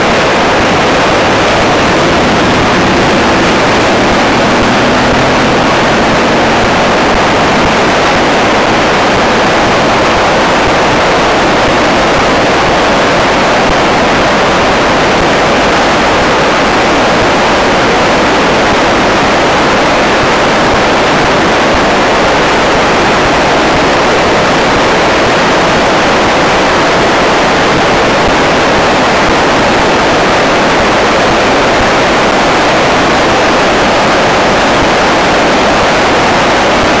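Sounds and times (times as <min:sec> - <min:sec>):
river rushing: 0:00.0 - 0:37.0.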